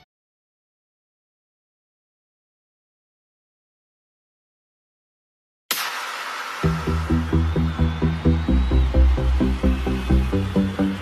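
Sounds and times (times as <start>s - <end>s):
electronic dance music: 5.7s - 11.0s.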